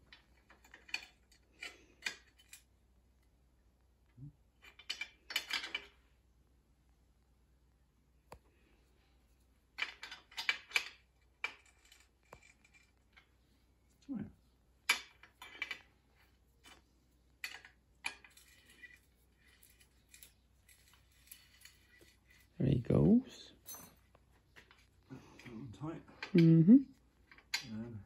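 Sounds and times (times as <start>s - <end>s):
spanners clinking on metal bolts: 23.6s - 24.1s.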